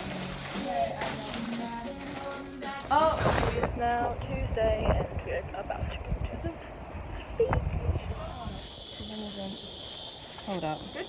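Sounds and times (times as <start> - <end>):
insects shrilling: 8.1 - 11.0.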